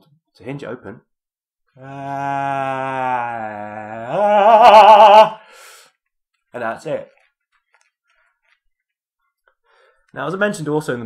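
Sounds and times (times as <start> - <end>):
faint light clicks and rustles: 5.9 - 10.6.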